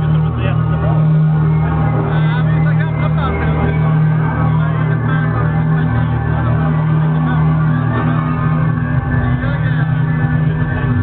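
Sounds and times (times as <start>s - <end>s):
electro music over sound system: 0.0s - 11.0s
voices: 0.0s - 11.0s.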